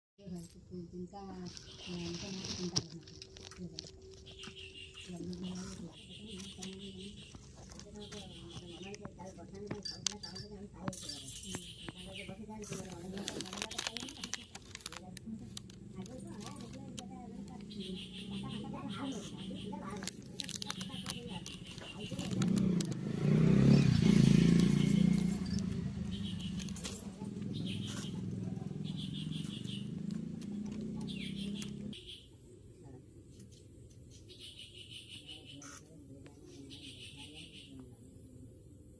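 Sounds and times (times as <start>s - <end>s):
vehicle engine humming: 0.3s - 32.1s
person's voice: 5.1s - 25.8s.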